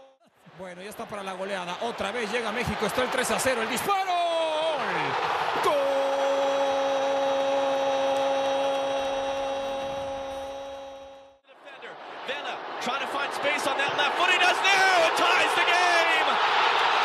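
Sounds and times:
stadium crowd noise: 0.2 - 17.0.

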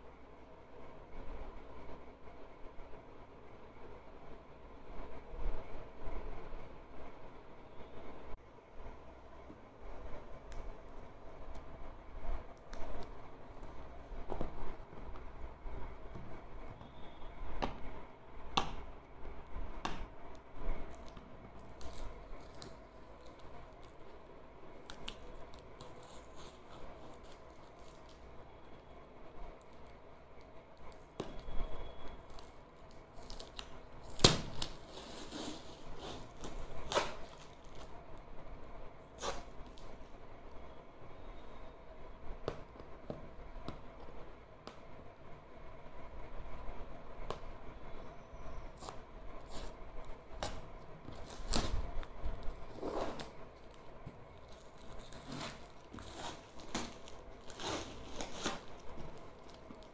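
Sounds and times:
packing tape peeling off cardboard: 20.3 - 24.2, 24.8 - 28.8, 30.8 - 38.0, 39.0 - 40.1, 48.8 - 59.9
tape snapping: 32.3 - 37.9.

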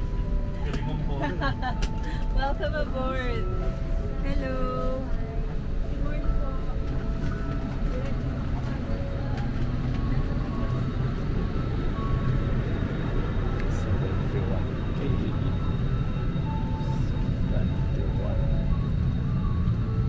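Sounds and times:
cabin air system rumble: 0.0 - 20.0
faint indistinct voices: 2.4 - 19.0.

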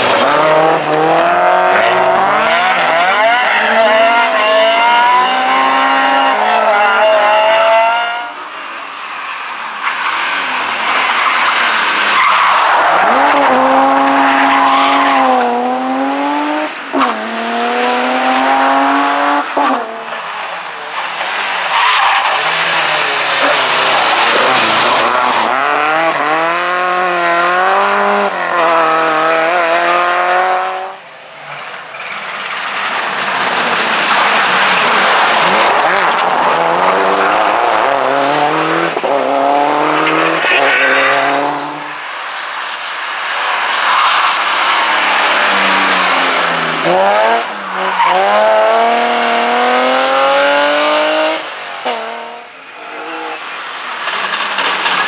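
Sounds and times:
rally car engines revving: 0.0 - 55.0
tyres squealing and skidding: 9.1 - 15.6, 19.9 - 26.4, 31.4 - 38.3, 39.4 - 51.2.

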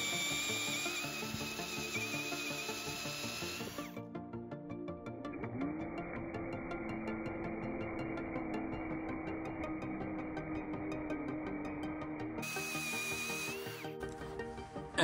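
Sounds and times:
drill boring into wood: 0.0 - 4.0, 5.4 - 14.2
background music: 0.0 - 15.0.

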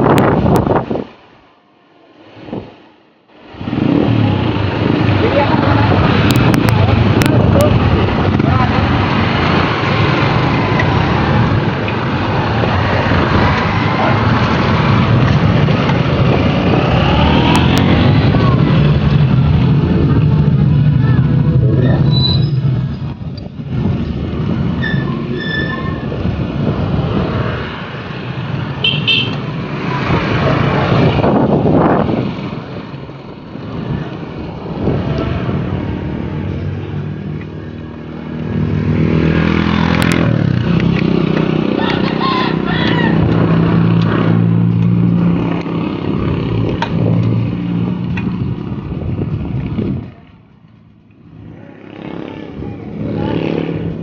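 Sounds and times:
motorcycles passing: 0.0 - 54.0
road traffic rumbling: 0.0 - 54.0.

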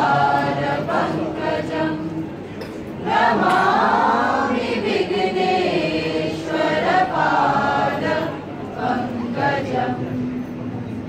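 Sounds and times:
group singing devotional prayer: 0.0 - 10.5.

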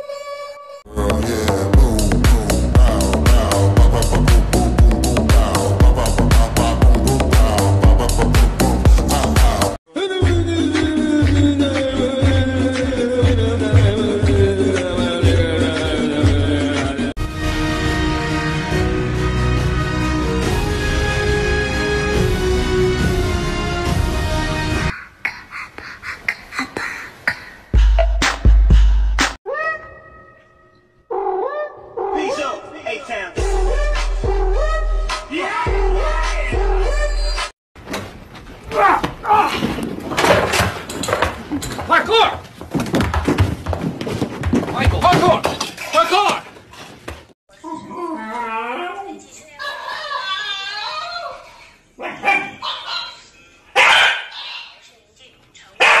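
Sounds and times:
dog barking: 31.1 - 32.4, 52.0 - 53.2, 53.8 - 54.7, 55.8 - 56.0.

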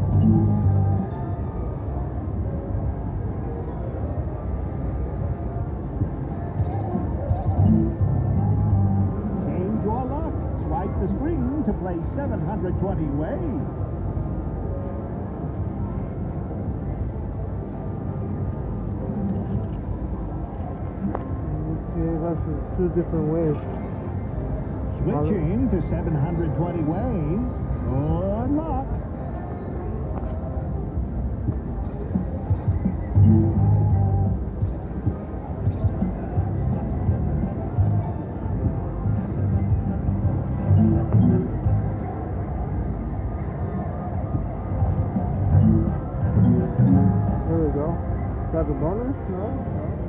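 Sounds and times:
casino background noise: 0.0 - 50.0
faint electronic machine tunes: 0.0 - 50.0.

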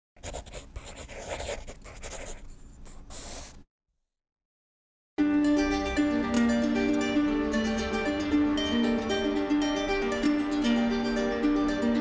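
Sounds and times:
pen scratching on paper: 0.2 - 3.6.

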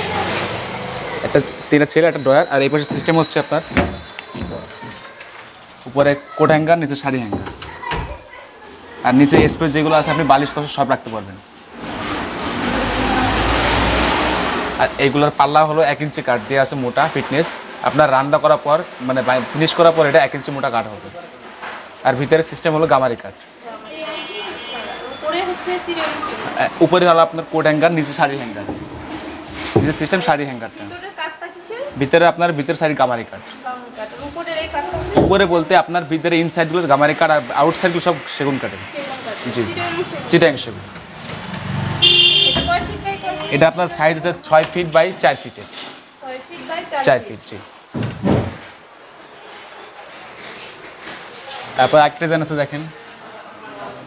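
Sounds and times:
vehicle engine approaching: 0.0 - 1.8, 11.7 - 15.2, 39.5 - 42.1
vehicle horn toot: 23.9 - 25.2, 42.0 - 43.6.

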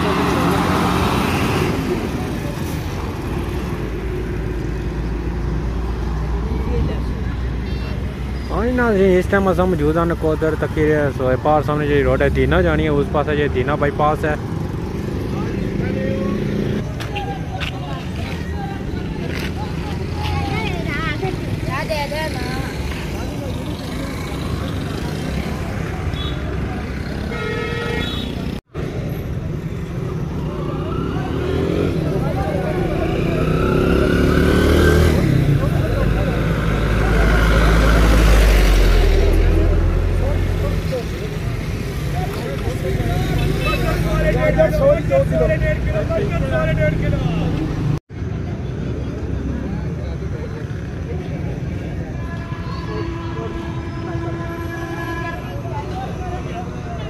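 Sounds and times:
roadside traffic: 0.0 - 57.0.

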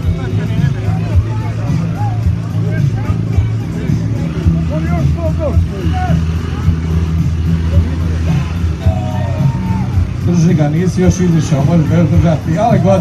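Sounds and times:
crowd chatter: 0.0 - 13.0
dirt bike engines at low revs: 0.0 - 13.0.

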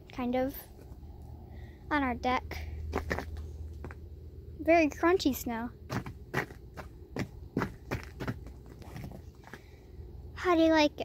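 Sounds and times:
footsteps crunching in snow: 5.9 - 9.7.

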